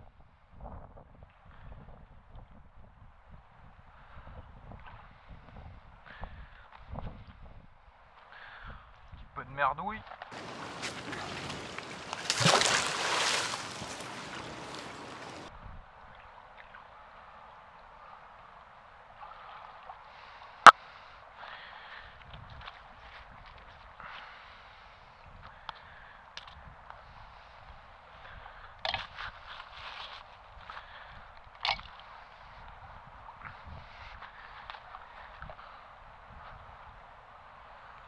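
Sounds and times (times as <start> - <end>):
river current gurgling: 10.3 - 15.5.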